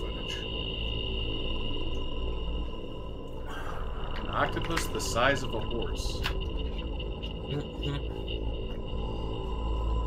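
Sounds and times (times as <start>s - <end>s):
eerie ambient drone: 0.0s - 10.0s.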